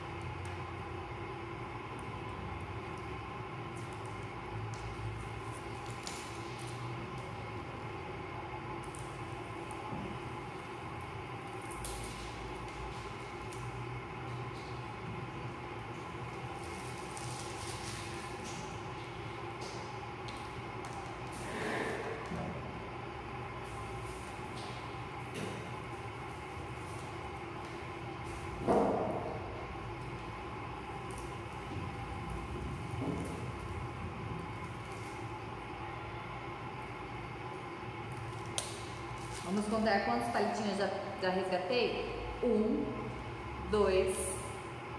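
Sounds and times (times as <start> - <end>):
low background hum: 0.0 - 44.9
adhesive tape peeling: 16.6 - 18.8.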